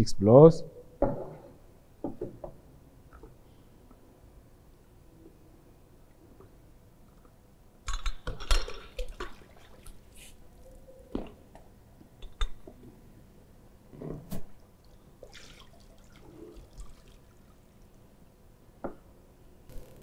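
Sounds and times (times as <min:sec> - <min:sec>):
water splashing and dripping: 0:08.7 - 0:10.1, 0:14.6 - 0:18.0.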